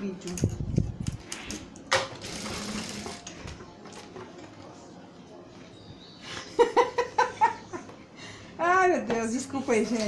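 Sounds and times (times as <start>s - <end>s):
sewing machine stitching: 2.2s - 3.2s.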